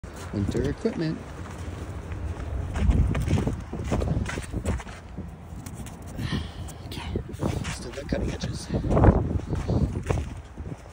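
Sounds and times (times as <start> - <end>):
footsteps in snow: 0.1 - 10.9
steady low rumble: 0.1 - 10.9.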